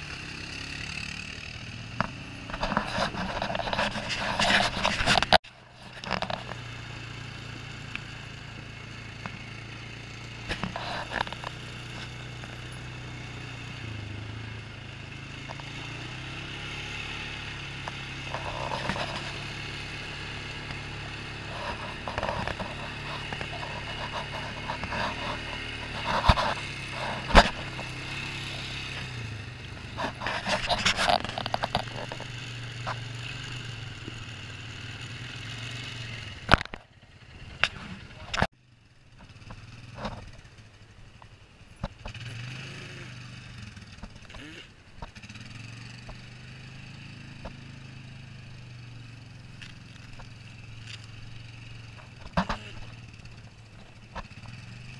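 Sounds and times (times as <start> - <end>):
atv engine running: 0.0 - 54.9
knocks and rattles over rocks: 2.0 - 6.6, 21.5 - 29.1, 29.8 - 33.0, 51.8 - 53.0.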